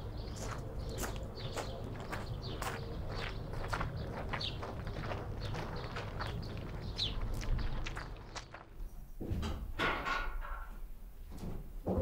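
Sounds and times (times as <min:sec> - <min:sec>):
footsteps on gravel: 0:00.0 - 0:08.9.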